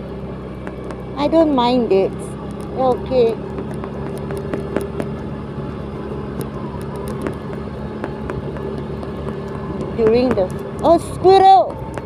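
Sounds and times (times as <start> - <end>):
scooter engine humming: 0.0 - 12.0
wind and road noise: 0.0 - 12.0.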